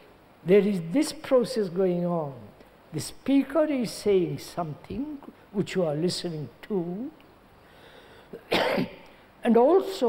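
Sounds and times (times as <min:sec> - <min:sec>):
person coughing: 0:08.3 - 0:09.1.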